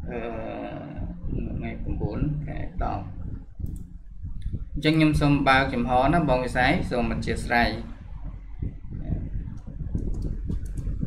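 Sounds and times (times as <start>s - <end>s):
man talking: 0.0s - 3.2s, 4.8s - 8.0s
computer mouse clicks: 3.6s - 3.9s, 10.0s - 11.0s.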